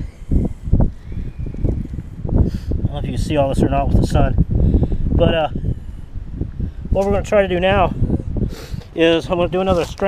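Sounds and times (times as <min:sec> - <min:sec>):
gusty wind buffeting microphone: 0:00.0 - 0:10.0.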